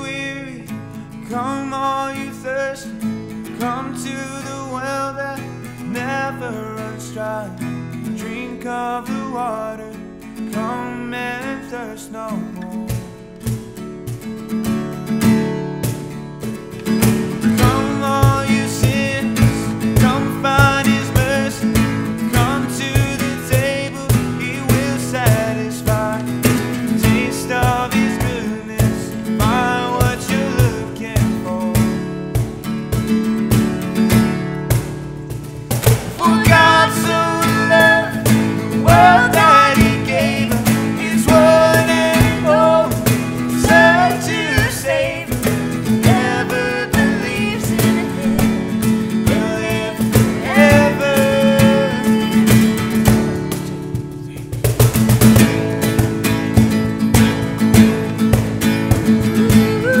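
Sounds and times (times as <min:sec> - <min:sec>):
strummed acoustic guitar: 0:00.0 - 1:00.0
cajon beat: 0:12.4 - 1:00.0
woman singing: 0:36.2 - 0:52.8, 0:59.2 - 1:00.0.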